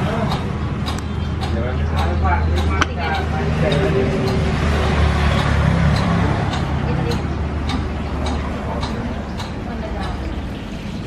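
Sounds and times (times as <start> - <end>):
indistinct voices: 0.0 - 11.0.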